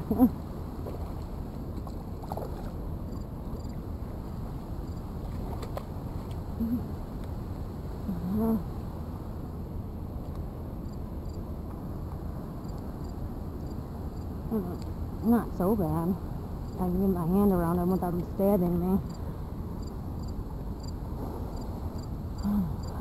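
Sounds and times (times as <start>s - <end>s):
low background rumble: 0.0s - 23.0s
faint insect chirping: 3.1s - 3.8s, 4.8s - 5.1s, 10.8s - 11.4s, 12.6s - 23.0s
person humming: 6.6s - 6.9s, 8.1s - 8.7s, 22.4s - 23.0s.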